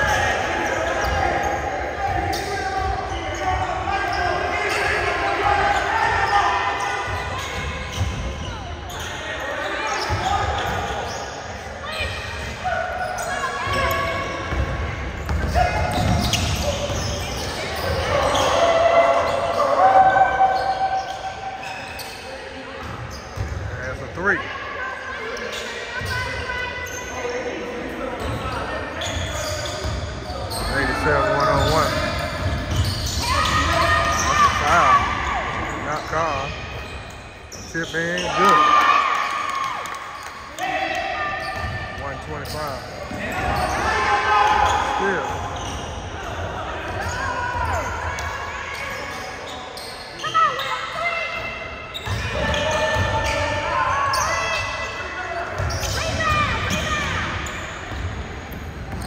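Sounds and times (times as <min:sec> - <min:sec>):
players' voices and calls: 0:00.0 - 0:59.0.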